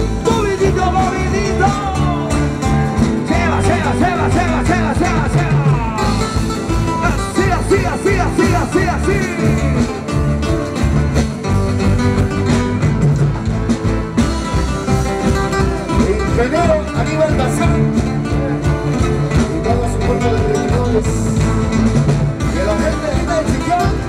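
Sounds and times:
person singing: 0.0s - 10.2s, 16.0s - 21.4s
drum kit steady beat: 0.0s - 24.0s
electric guitar: 0.0s - 24.0s
strummed acoustic guitars: 0.0s - 24.0s.

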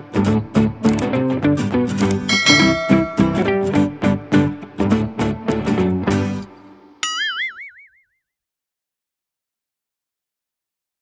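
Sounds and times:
plucked-string music jingle: 2.3s - 4.5s
cartoon boing sound effect: 7.0s - 8.2s.

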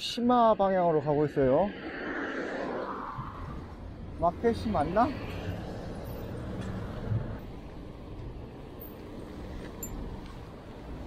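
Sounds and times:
road noise: 0.0s - 11.0s
wind on microphone: 1.4s - 4.5s.

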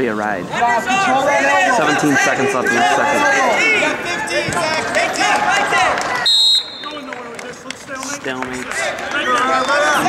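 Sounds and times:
crowd shouting: 0.4s - 7.4s, 8.6s - 10.0s.

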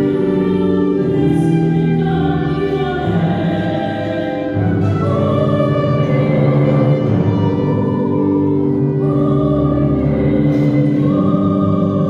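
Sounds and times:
choir singing a slow hymn: 0.0s - 12.0s.

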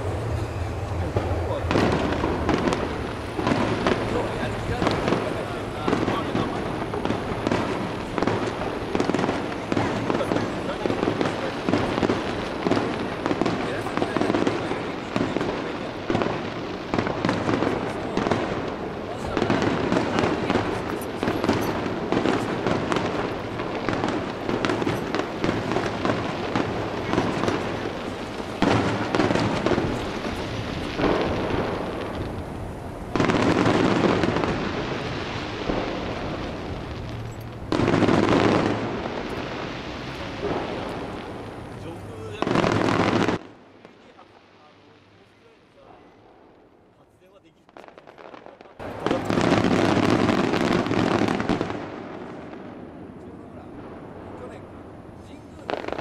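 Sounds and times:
fireworks bursting: 0.0s - 56.0s.

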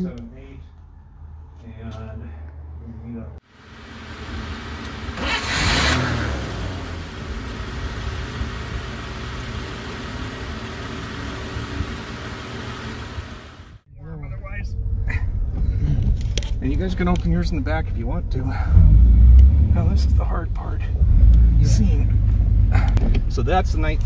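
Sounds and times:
car engine revving and running: 3.5s - 13.8s, 18.4s - 24.0s
voices inside car: 19.5s - 24.0s.

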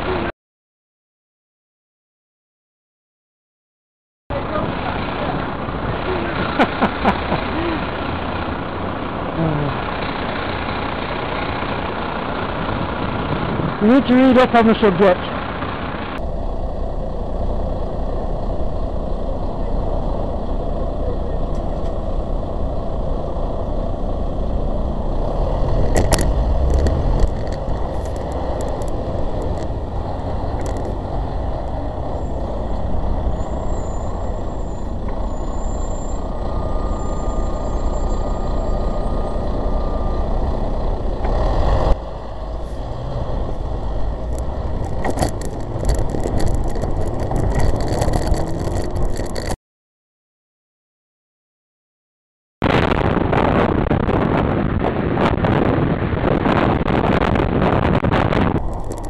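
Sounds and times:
car and bus engines rumbling: 0.0s - 0.3s, 4.3s - 49.6s, 52.6s - 59.0s.

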